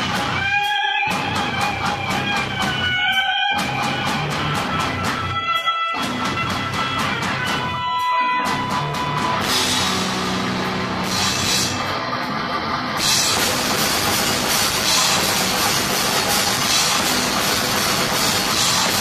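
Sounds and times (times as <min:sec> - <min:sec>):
drum kit: 0:00.0 - 0:19.0
electric guitars riffing: 0:00.0 - 0:19.0.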